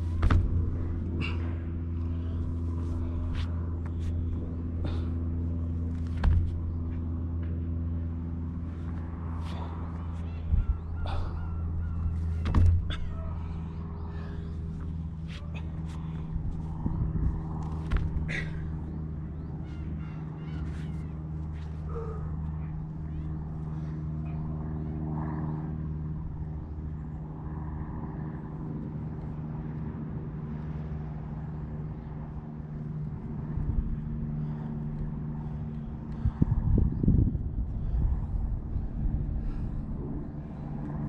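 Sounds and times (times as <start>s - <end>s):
low mechanical hum: 0.0s - 41.0s
sharp knocks: 6.2s - 6.6s.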